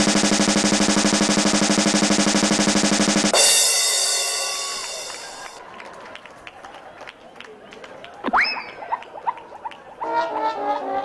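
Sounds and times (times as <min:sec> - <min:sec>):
snare drum roll: 0:00.0 - 0:05.6
steady low note: 0:00.0 - 0:05.6.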